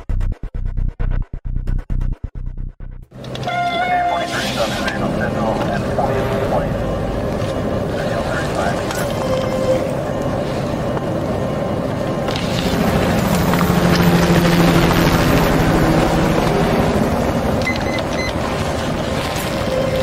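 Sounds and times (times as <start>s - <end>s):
car engine running: 4.3s - 20.0s.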